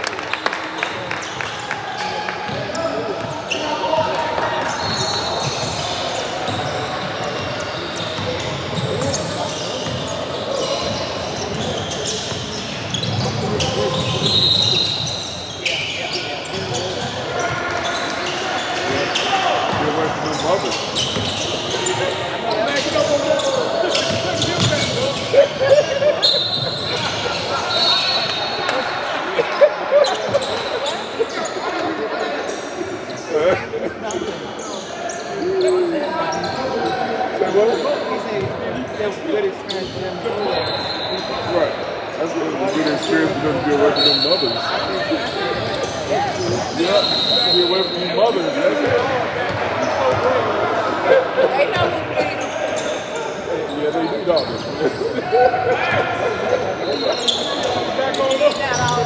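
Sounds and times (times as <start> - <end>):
voices of players and spectators: 0.0 - 59.0
high-pitched shoe squeals: 4.6 - 33.4, 38.8 - 41.7, 42.7 - 49.0, 52.3 - 55.0, 56.2 - 59.0.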